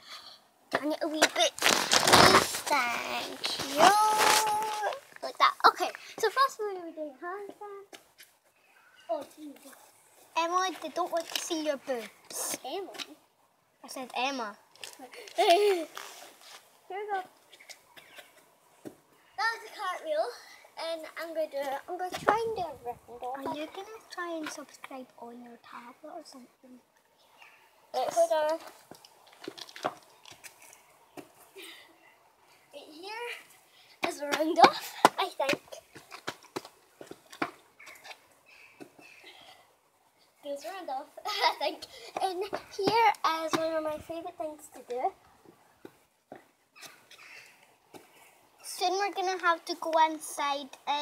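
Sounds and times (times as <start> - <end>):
girl speaking: 0.7 - 1.6, 2.2 - 8.0, 9.1 - 9.8, 10.4 - 13.2, 13.8 - 15.9, 16.9 - 17.3, 19.4 - 26.9, 28.0 - 28.7, 32.7 - 35.9, 40.4 - 45.2, 48.6 - 51.0.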